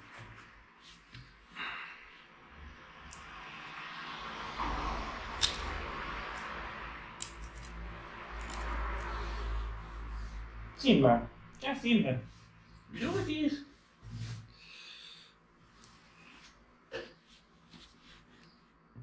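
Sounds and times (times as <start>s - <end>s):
hands rustling and scraping: 15.6s - 18.8s.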